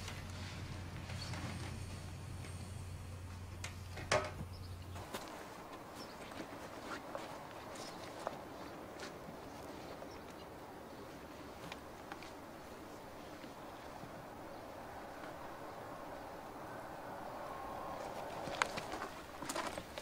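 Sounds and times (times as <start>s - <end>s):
low steady hum: 0.0s - 20.0s.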